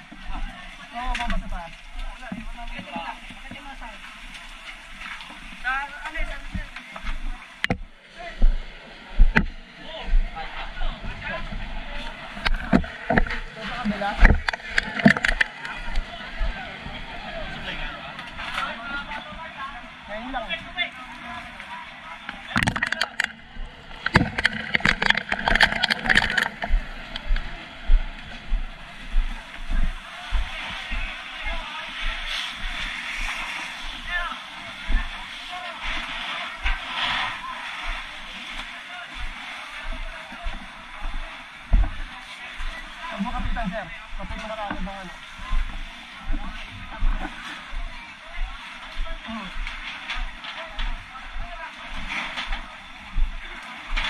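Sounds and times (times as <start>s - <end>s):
chatter of people: 0.0s - 54.0s
low thumps of footsteps: 6.5s - 16.6s, 22.6s - 31.1s, 39.9s - 54.0s
rushing bursts of water spray: 28.8s - 44.3s.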